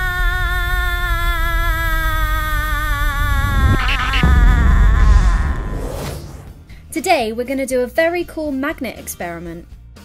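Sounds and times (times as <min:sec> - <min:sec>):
low rumble: 0:00.8 - 0:08.1
electronic hum sinking in pitch: 0:01.0 - 0:06.9
loud burst of noise: 0:01.7 - 0:07.6.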